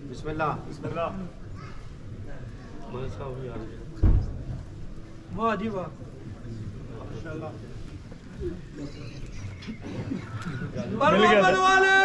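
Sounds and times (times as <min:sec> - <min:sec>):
murmuring voices: 0:00.8 - 0:12.0.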